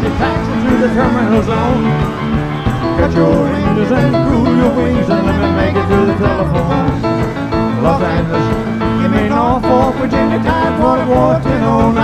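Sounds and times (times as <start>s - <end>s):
person singing: 0.0s - 12.0s
rock and roll band playing: 0.0s - 12.0s.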